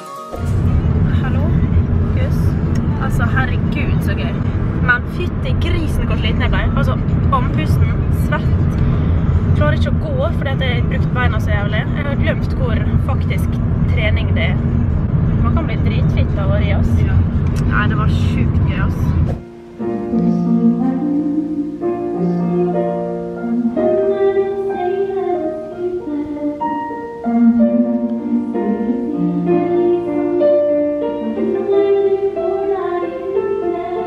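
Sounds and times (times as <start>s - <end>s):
car engine and road rumble: 0.3s - 26.6s.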